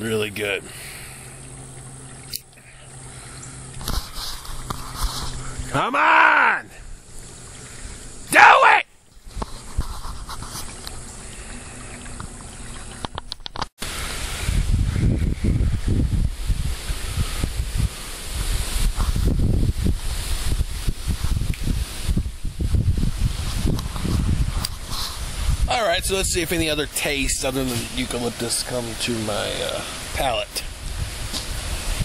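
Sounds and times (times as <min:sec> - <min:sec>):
steady hiss: 0:00.0 - 0:13.2, 0:13.8 - 0:32.0
wind buffeting microphone: 0:13.8 - 0:28.3, 0:30.2 - 0:32.0.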